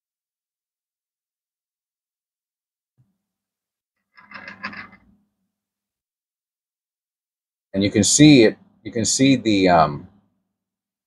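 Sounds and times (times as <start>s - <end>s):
scraping handling noise: 4.2s - 5.2s.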